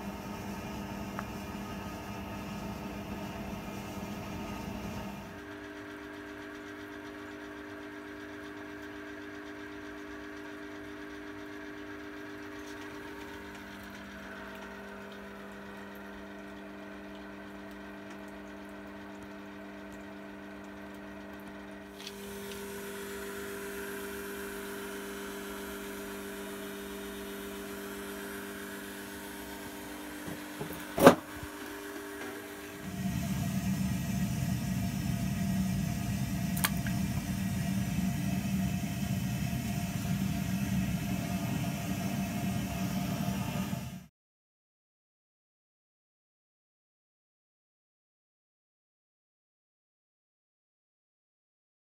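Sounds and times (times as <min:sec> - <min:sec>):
pump motor humming: 0:00.0 - 0:44.1.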